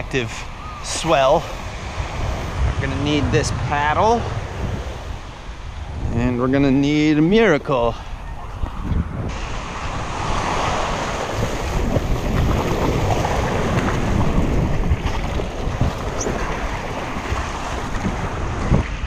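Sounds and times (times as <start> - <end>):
surf washing: 0.0 - 19.0
wind buffeting microphone: 0.0 - 19.0.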